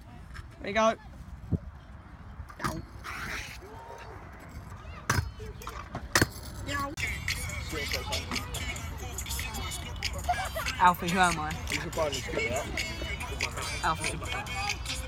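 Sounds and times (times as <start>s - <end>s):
scooter wheels rolling on concrete: 0.1s - 15.0s
scooter clacking on ground: 2.5s - 7.0s.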